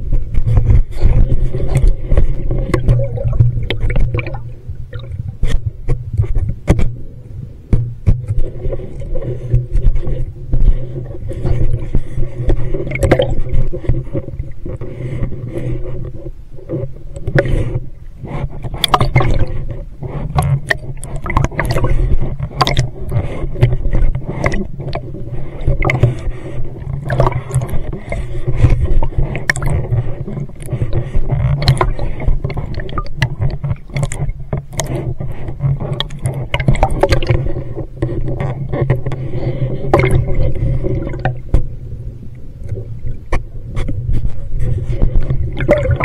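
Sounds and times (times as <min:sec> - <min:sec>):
underwater bubbles gurgling: 0:00.0 - 0:46.0.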